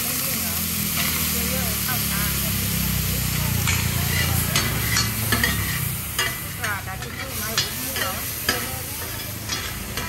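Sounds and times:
frying sizzle: 0.0 - 10.0
metal spatula scraping iron pan: 3.7 - 10.0.

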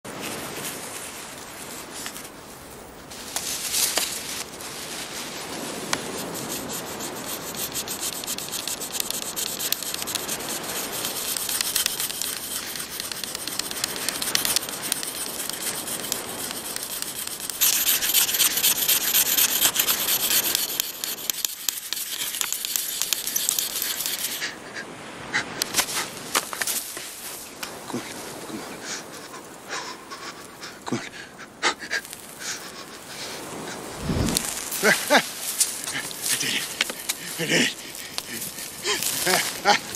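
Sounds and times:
wood scraping on wood: 3.4 - 24.5, 33.8 - 39.9.

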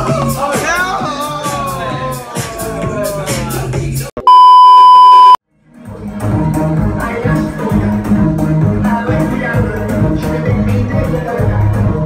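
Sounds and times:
music with voices: 0.0 - 4.1, 5.5 - 12.0
censor bleep: 4.2 - 5.4.

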